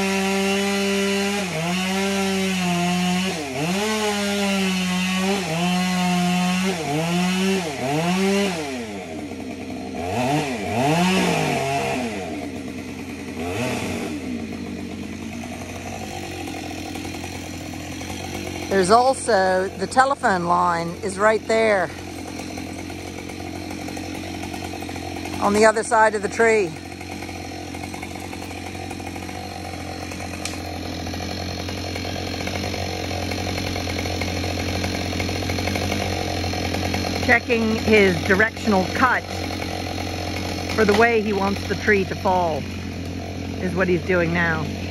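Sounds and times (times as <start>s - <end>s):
chainsaw revving and idling: 0.0s - 44.9s.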